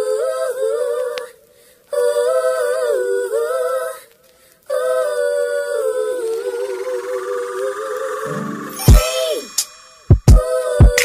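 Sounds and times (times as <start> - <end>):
voices humming in harmony: 4.7 - 9.8.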